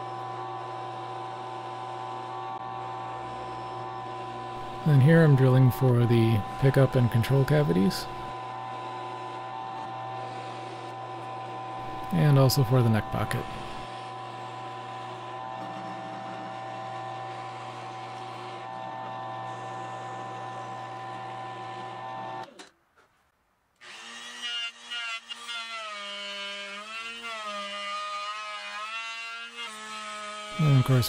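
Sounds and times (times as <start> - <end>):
drill press motor running: 0.0 - 22.7, 23.8 - 27.2
power tool whirring: 0.0 - 22.7, 23.8 - 31.0.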